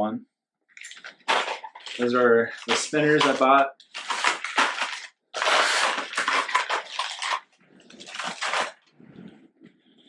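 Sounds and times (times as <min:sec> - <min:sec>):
plastic packaging crinkling: 0:00.8 - 0:09.0.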